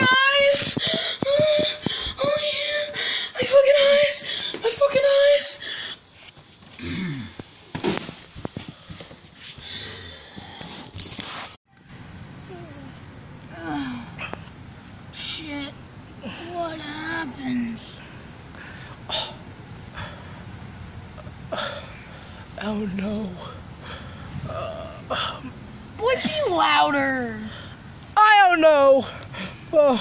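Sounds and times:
steady background hiss: 0.0s - 30.0s.

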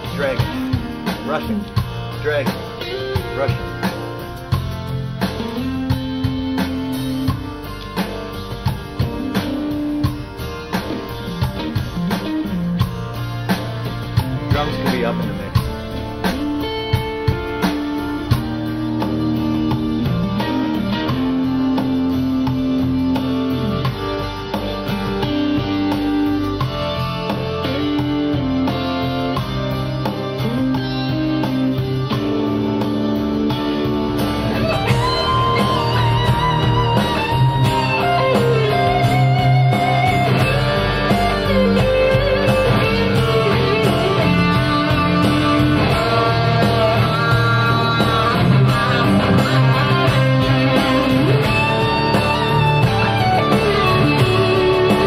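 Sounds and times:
electric guitar held notes: 0.0s - 55.0s
guitar lead line with vibrato: 0.0s - 55.0s.

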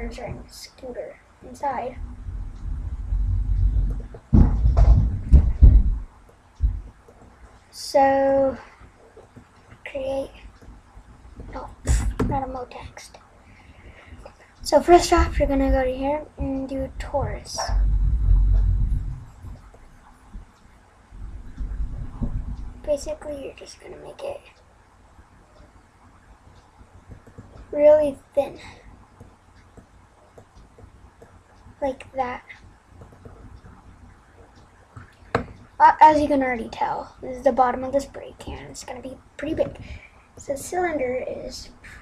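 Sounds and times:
low rumble: 1.8s - 6.9s, 14.6s - 23.2s
scooter wheels rumbling on floor: 4.0s - 5.9s
scooter bumps and knocks: 4.3s - 5.6s.

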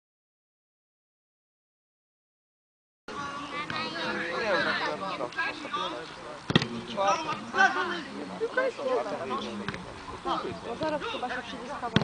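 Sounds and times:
football kick thump: 6.5s - 7.5s.

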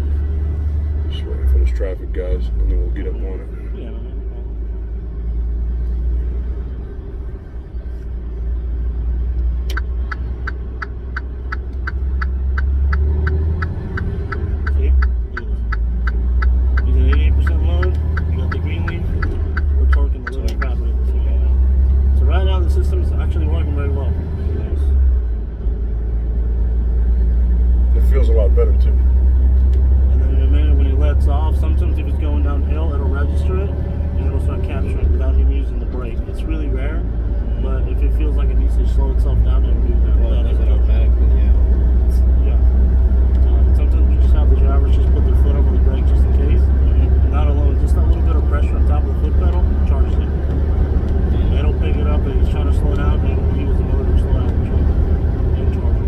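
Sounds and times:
truck engine and road rumble: 0.0s - 56.0s
turn signal clicking: 9.3s - 20.9s.

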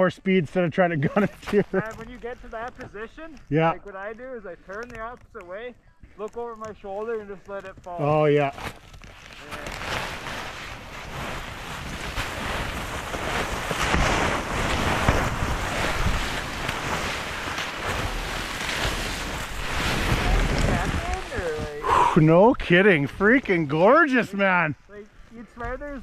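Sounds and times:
snow scraping against microphone: 8.2s - 26.0s
rumbling wind noise: 9.9s - 23.2s.

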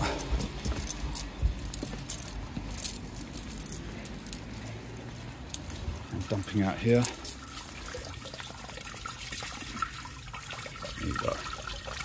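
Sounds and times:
footsteps: 0.0s - 7.4s
light clicks and rattles: 0.0s - 7.6s
handling noise: 0.0s - 7.8s.

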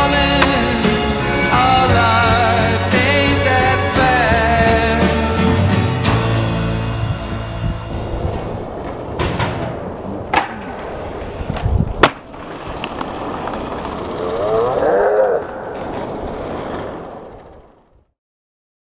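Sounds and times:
skateboard wheels rolling on concrete: 0.0s - 18.1s.

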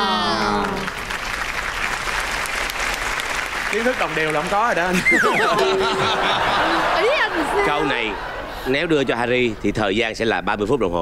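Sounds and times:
audience applauding: 0.0s - 9.4s.

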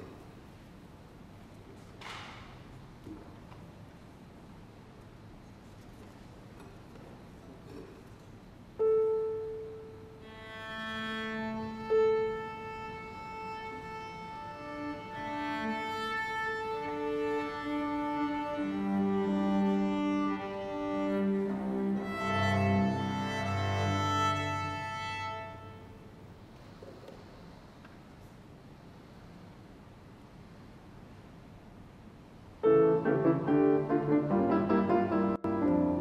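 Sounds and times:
violin and cello bowed notes: 8.8s - 26.1s
piano note: 32.6s - 36.0s.

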